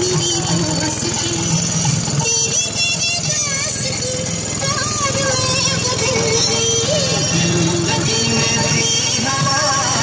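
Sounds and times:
background music: 0.0 - 10.0
small boat motor running: 0.0 - 10.0
voices: 0.0 - 10.0.

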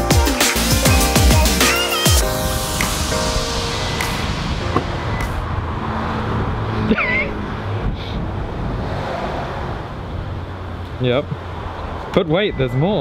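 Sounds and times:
traffic noise: 2.2 - 13.0.

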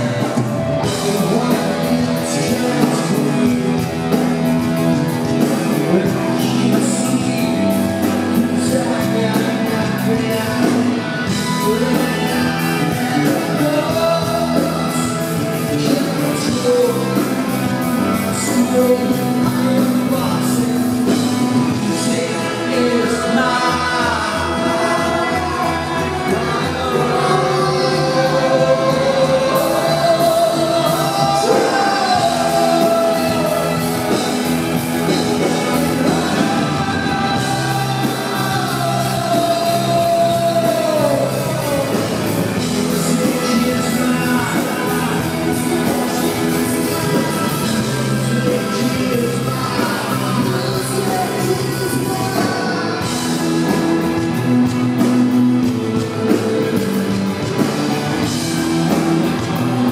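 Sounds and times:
live rock band playing: 0.0 - 59.9
man singing: 0.0 - 59.9.

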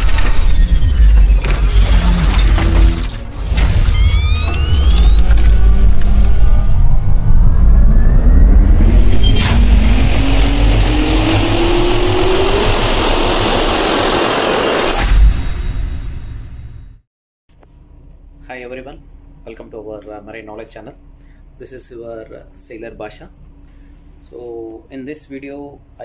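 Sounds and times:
heavy rumble and rushing air: 0.0 - 16.5
rising swooshes: 0.0 - 16.5
jet turbine whine: 0.0 - 16.7
sharp hit: 0.0 - 17.0.

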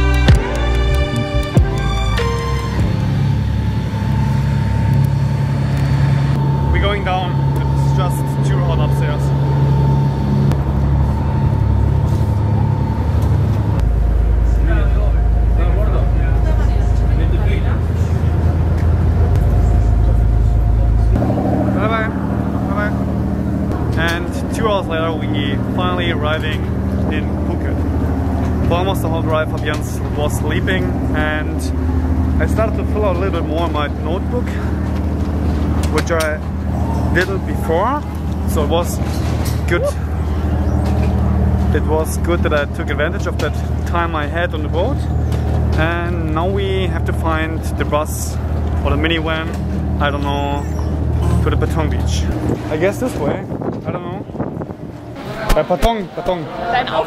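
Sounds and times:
ferry engines droning: 0.0 - 57.0
indistinct voices: 0.0 - 57.0.

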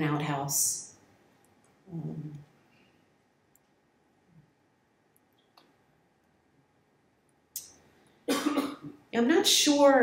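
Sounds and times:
woman coughing: 8.3 - 9.0.

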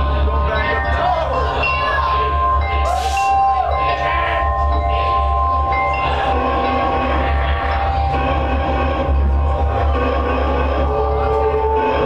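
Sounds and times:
low bass drone: 0.0 - 12.0
ringing guitar tones: 0.0 - 12.0.

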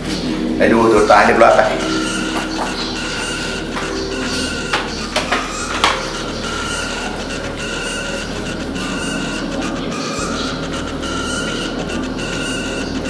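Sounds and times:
low music drone: 0.0 - 13.0
repeating high musical figure: 0.9 - 13.0.

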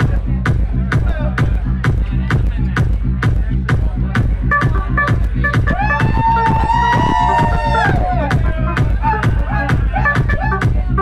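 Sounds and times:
kick drum beat: 0.0 - 11.0.

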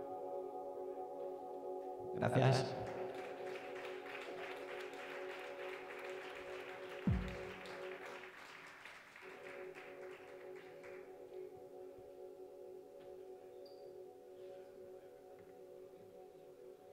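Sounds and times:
audience applause: 2.7 - 11.1.

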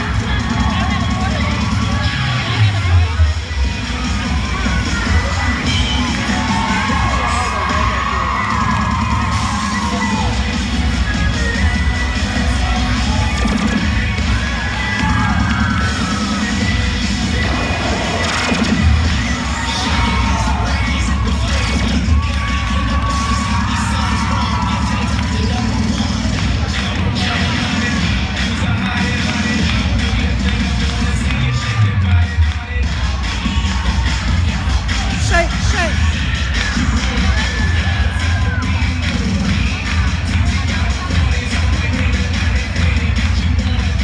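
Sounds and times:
cheerleading music with bass beat: 0.0 - 44.0
crowd cheering and shouting: 0.0 - 44.0.

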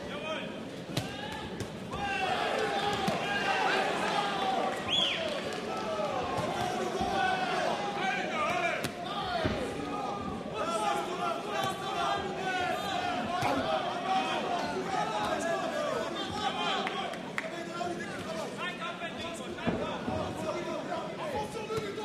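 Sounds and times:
crowd shouting: 1.0 - 18.0.

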